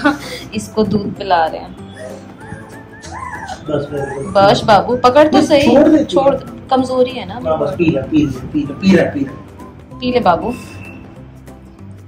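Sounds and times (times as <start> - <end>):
puppy whimpering: 1.8 - 6.4.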